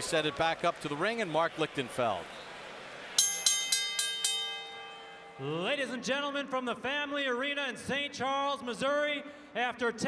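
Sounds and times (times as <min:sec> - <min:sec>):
boxing ring bell strikes: 0:03.2 - 0:05.6.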